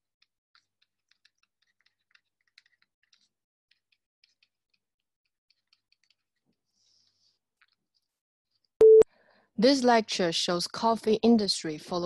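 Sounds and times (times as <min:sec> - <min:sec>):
short electronic beep: 0:08.8 - 0:09.1.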